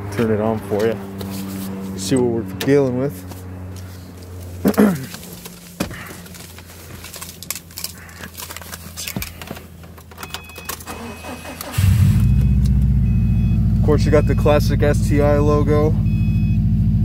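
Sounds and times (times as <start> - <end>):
car engine starting and idling: 4.0 - 17.0.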